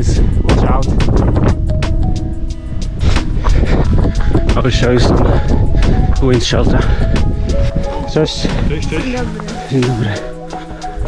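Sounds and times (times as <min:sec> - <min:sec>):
background music: 0:00.0 - 0:11.0
wind buffeting microphone: 0:00.0 - 0:11.0.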